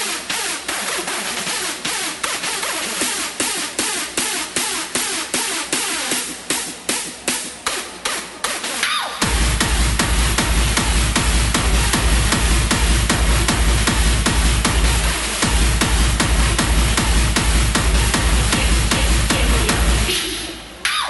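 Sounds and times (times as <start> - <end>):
heavy bass kick drum: 0.0 - 20.4
hardstyle dance music: 0.0 - 21.0.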